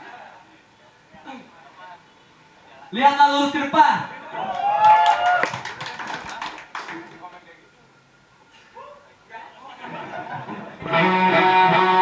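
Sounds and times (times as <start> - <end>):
crowd cheering: 4.1 - 7.3
scattered hand claps: 4.6 - 7.3.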